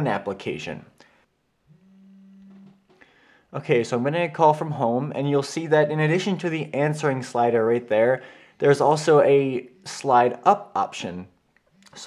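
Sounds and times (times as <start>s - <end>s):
phone vibration buzzing: 1.6s - 3.0s.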